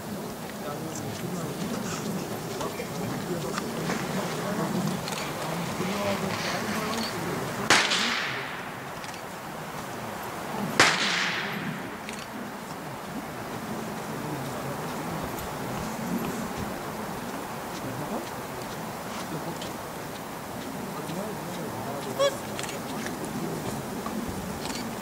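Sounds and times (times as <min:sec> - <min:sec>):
blank pistol shots with echo: 0:07.7 - 0:08.8, 0:10.8 - 0:12.1.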